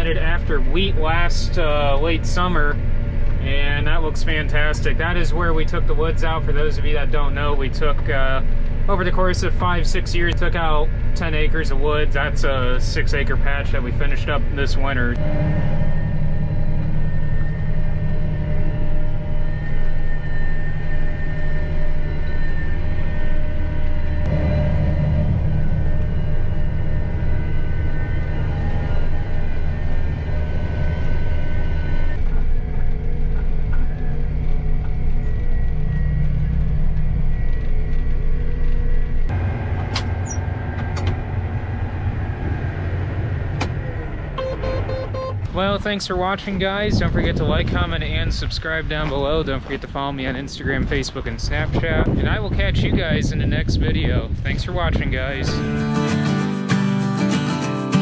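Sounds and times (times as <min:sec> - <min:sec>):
diesel engine drone: 0:00.0 - 0:58.0.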